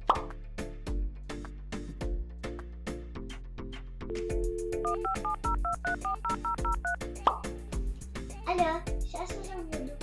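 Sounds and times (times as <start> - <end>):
background music with steady beat: 0.0 - 10.0
telephone keypad touch-tones: 4.1 - 7.0.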